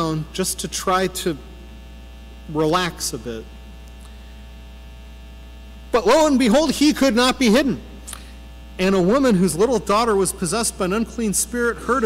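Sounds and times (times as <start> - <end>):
electrical mains hum: 0.0 - 12.0
higher hum tones: 0.0 - 12.0
man's voice: 6.0 - 7.8, 8.8 - 12.0.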